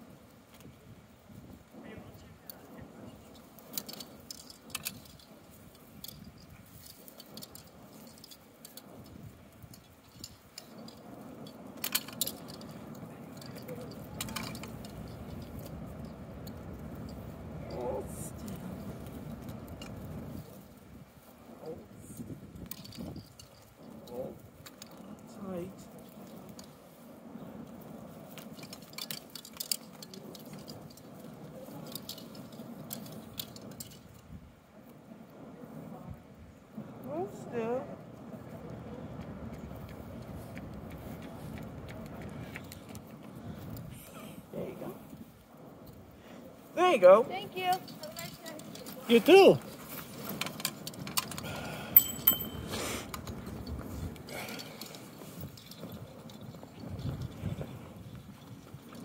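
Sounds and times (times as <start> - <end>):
faint voices: 1.7 - 3.7, 11.2 - 20.3.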